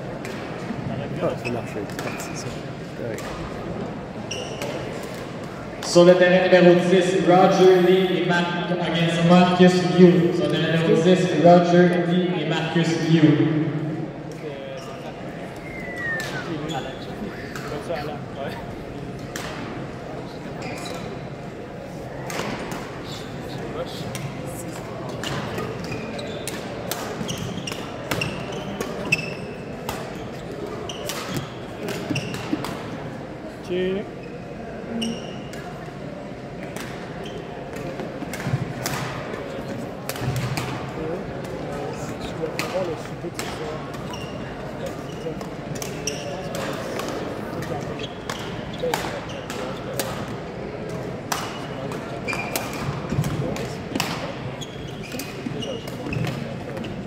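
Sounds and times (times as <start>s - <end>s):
murmur of voices in a hall: 0.0s - 57.0s
shoes squeaking on sports floor: 1.1s - 3.4s, 4.2s - 5.1s, 14.7s - 17.9s, 20.4s - 21.3s, 24.9s - 32.7s, 33.9s - 35.7s, 37.2s - 38.0s, 44.0s - 47.0s, 47.6s - 50.1s, 51.5s - 53.6s, 54.5s - 57.0s.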